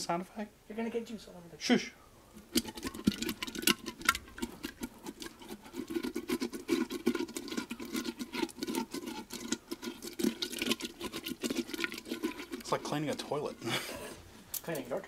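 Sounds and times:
wet squelching of melon flesh: 2.5 - 14.1.

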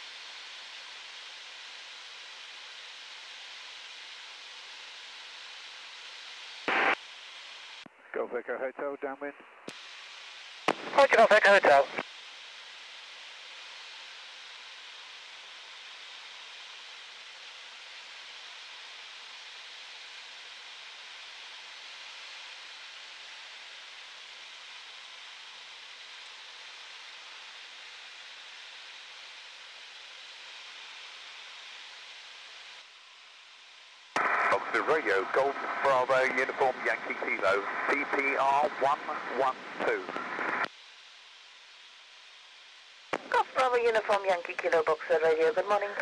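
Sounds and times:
headset intercom hiss: 6.6 - 7.0, 10.7 - 12.0, 34.2 - 40.7, 43.1 - 46.0.

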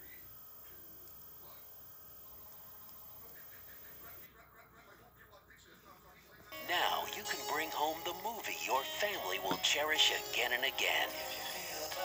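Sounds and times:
tape hiss and hum: 0.0 - 12.0.

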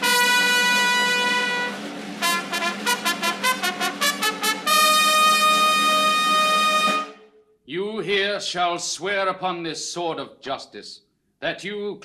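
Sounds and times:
brass fanfare long high note: 0.0 - 7.4.

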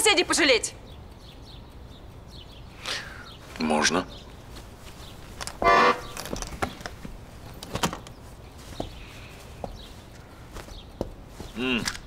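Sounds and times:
light knocks of handling: 4.2 - 12.0
accordion chord: 5.6 - 6.4.

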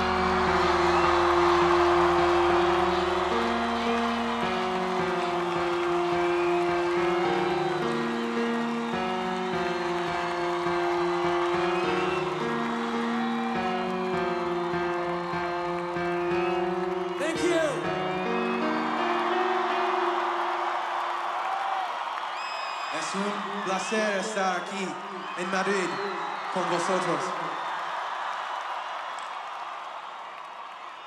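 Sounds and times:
synthesizer pad chords: 0.0 - 20.8
crowd cheering and whistling: 0.0 - 31.0.

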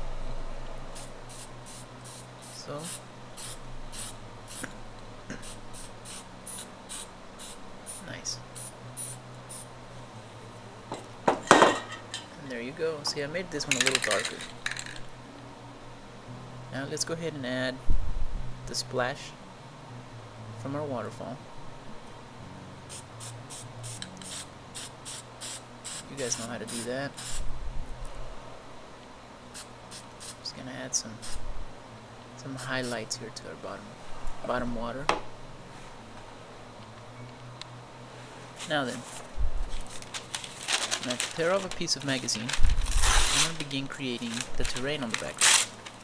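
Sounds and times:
aerosol spray can bursts: 1.0 - 4.7, 5.3 - 8.0, 22.9 - 27.4, 31.2 - 31.4.

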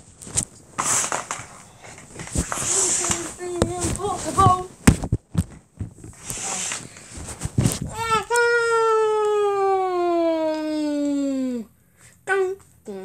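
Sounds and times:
microphone handling clicks and rustling: 0.0 - 8.4.

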